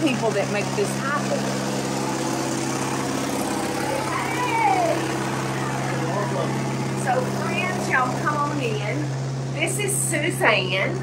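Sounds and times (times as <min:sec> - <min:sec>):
low mechanical hum: 0:00.0 - 0:11.0
faint voices: 0:03.7 - 0:08.2.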